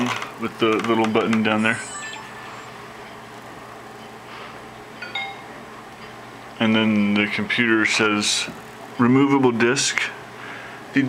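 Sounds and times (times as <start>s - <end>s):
low steady hum: 0.0s - 11.0s
electronic beep: 1.5s - 3.3s.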